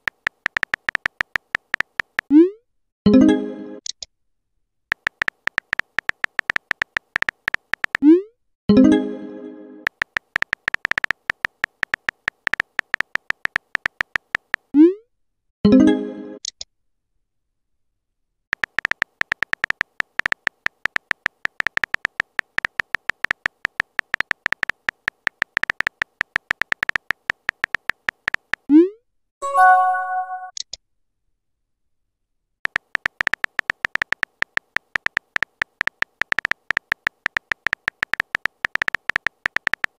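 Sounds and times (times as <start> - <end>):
keyboard typing clicks: 0.0 - 2.4, 4.9 - 8.1, 9.9 - 14.7, 18.5 - 28.7, 32.6 - 39.9.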